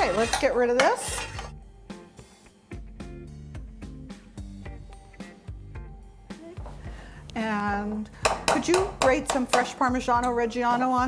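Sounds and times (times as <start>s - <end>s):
metal cookware clatter: 0.0s - 1.6s
soft background music: 0.0s - 11.0s.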